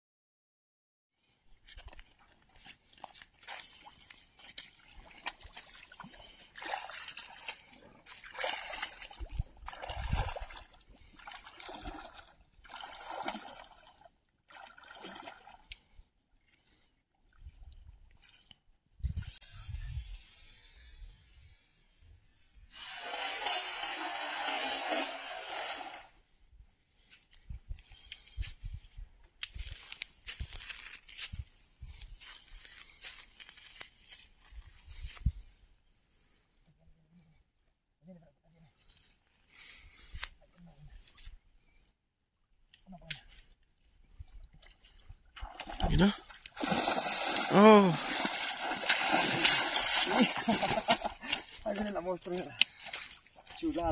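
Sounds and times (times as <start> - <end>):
wading through shallow water: 1.2 - 19.5, 42.5 - 53.9
cast net splashing onto water: 45.4 - 51.4.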